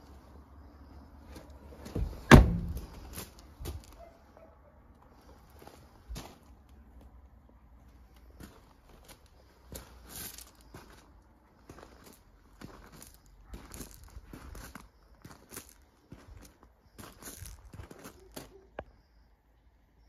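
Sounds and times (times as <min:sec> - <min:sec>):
footsteps crunching on gravel: 0:01.3 - 0:04.1, 0:05.1 - 0:07.1, 0:08.1 - 0:18.7.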